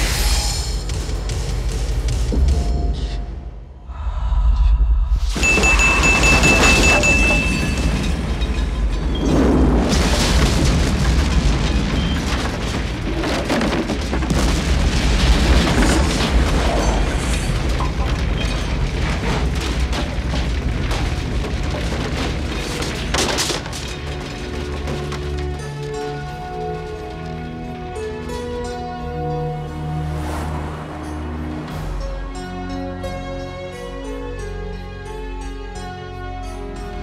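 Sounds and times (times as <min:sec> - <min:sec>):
film music: 0:00.0 - 0:08.9, 0:23.6 - 0:37.0
explosion rumbling and roaring: 0:02.1 - 0:28.7
high ringing tone: 0:05.4 - 0:08.5.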